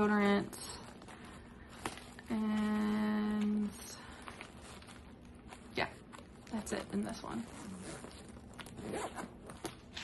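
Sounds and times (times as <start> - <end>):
zipper being pulled: 7.3 - 10.0.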